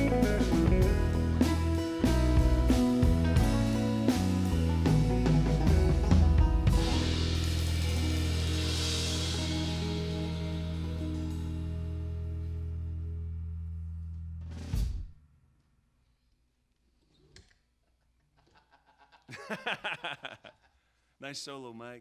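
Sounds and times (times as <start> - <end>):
drum and cymbal strikes: 0.0 - 11.4
live band closing chord: 0.0 - 12.0.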